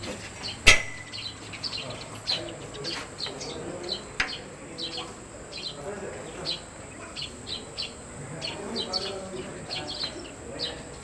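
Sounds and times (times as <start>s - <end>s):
faint murmur: 0.0s - 11.0s
small birds chirping: 0.0s - 11.0s
sharp click: 0.7s - 1.2s.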